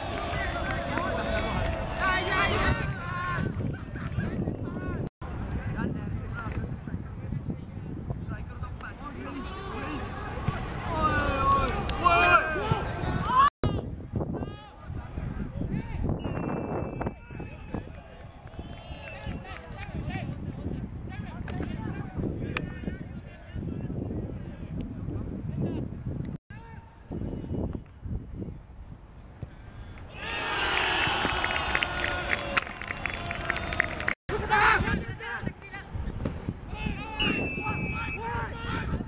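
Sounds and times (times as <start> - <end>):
shrill referee's whistle: 16.2 - 17.2, 37.2 - 38.4.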